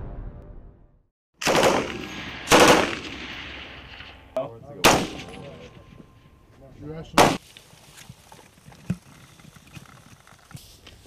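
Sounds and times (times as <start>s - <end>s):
rifle shots echoing: 1.4s - 6.0s, 7.1s - 7.4s.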